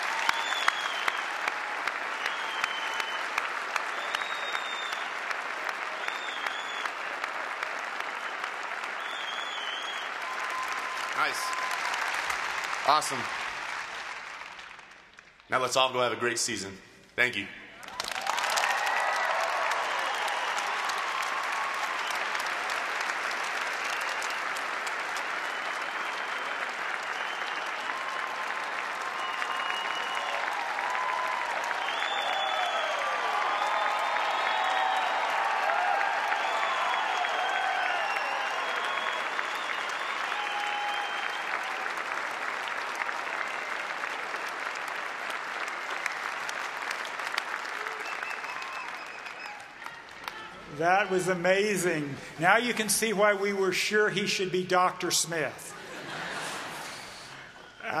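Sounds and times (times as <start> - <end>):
crowd applauding: 0.0 - 16.4, 17.8 - 58.0
crowd shouts and whoops: 17.9 - 22.3, 27.2 - 41.9.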